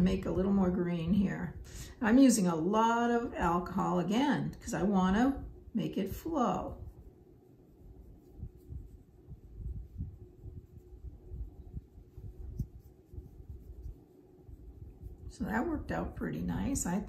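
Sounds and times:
steady low hum: 0.0s - 17.0s
paintbrush knocking and rubbing on paper: 6.3s - 16.7s.

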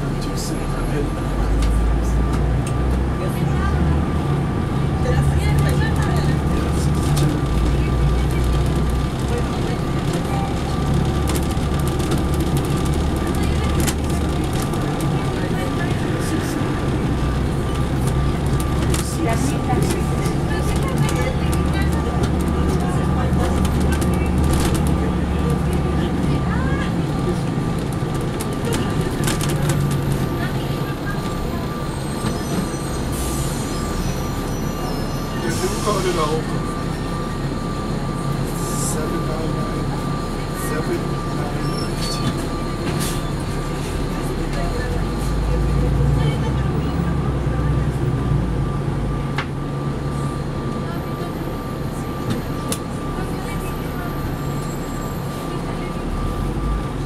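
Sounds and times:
bus diesel engine drone: 0.0s - 57.0s
road rumble: 0.0s - 57.0s.

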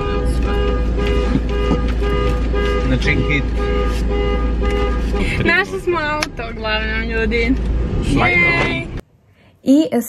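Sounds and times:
car cabin rumble: 0.0s - 9.0s.

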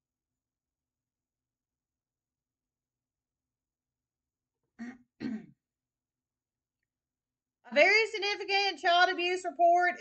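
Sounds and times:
woman clearing her throat: 4.8s - 5.6s.

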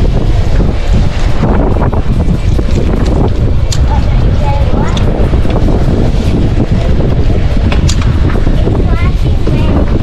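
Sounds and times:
loud wind buffeting microphone: 0.0s - 10.0s.

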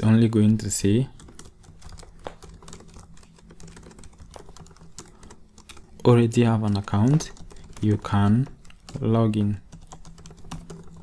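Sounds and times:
computer keyboard typing: 0.0s - 11.0s.

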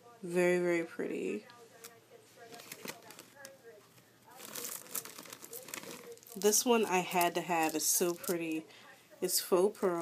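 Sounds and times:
packaging crinkling: 1.8s - 3.5s, 4.3s - 8.5s.

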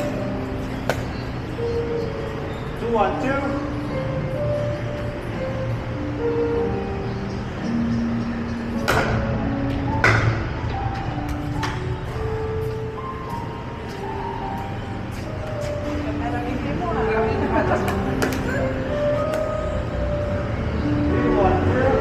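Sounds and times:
background music of held notes: 0.0s - 22.0s.

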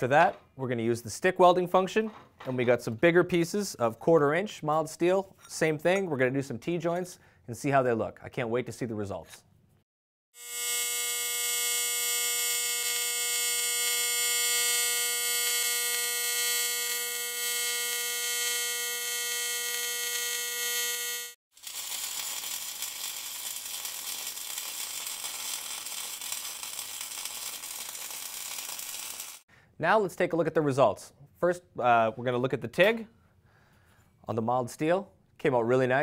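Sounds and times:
stick welding arc crackling: 10.4s - 29.4s
tig welding arc buzzing: 10.4s - 29.4s.

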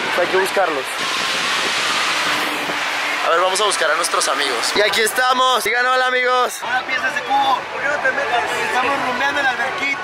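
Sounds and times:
fountains splashing: 0.0s - 10.0s.

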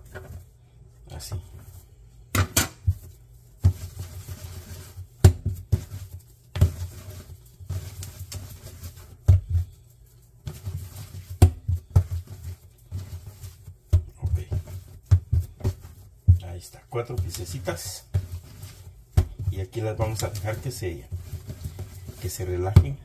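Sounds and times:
dough rubbing and kneading: 0.0s - 23.0s
scraper and dough knocking on counter: 2.3s - 23.0s.

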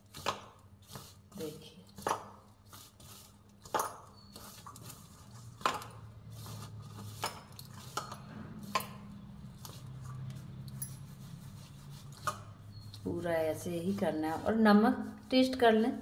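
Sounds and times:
hand rubbing flour in a bowl: 0.0s - 16.0s.

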